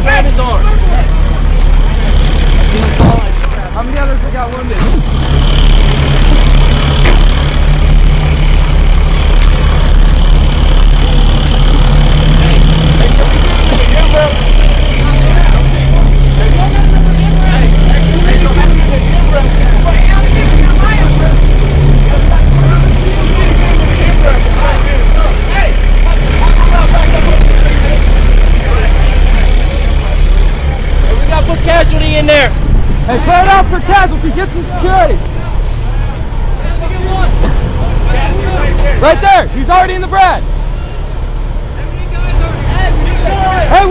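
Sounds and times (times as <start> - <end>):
heavy vehicle engine idling: 0.0 - 43.9
indistinct voices: 0.0 - 43.9.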